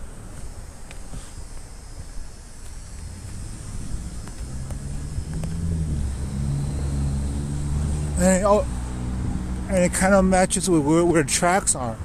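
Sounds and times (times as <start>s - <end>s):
car engine running: 2.6s - 11.2s.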